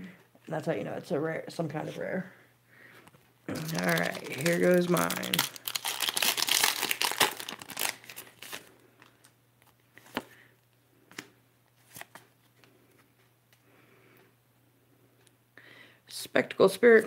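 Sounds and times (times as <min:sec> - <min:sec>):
foil wrapper crinkling: 0:03.5 - 0:09.3.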